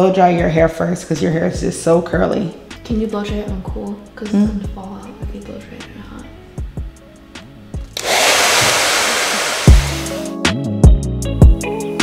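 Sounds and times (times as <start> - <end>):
background music with a beat: 6.3 - 8.0, 9.6 - 12.0
hair dryer blowing: 8.0 - 10.4.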